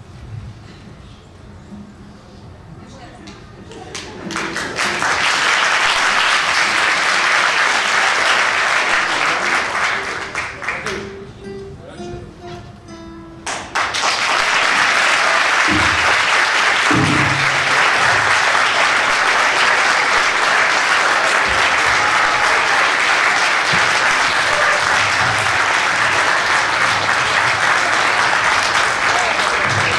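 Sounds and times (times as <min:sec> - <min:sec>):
audience applause: 0:03.7 - 0:11.2, 0:13.4 - 0:29.9.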